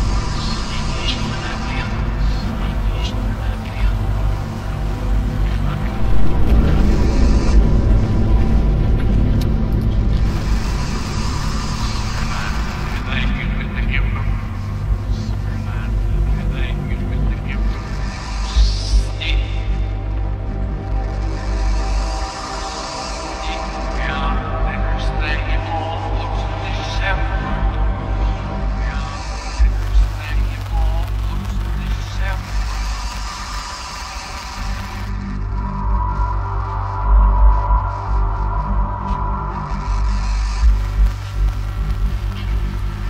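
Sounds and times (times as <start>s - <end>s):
dark ambient low drone: 0.0s - 43.0s
hissing rumbling noise: 0.0s - 43.0s
indistinct spoken voice sample: 0.4s - 4.4s, 12.0s - 20.0s, 23.3s - 32.9s.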